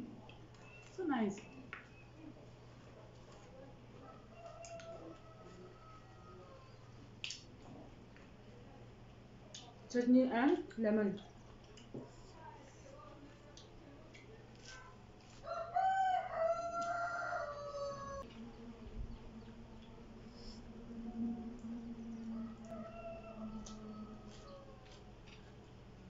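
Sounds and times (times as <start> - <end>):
rooster crowing: 4.0 - 7.0, 15.4 - 18.3, 20.3 - 25.1.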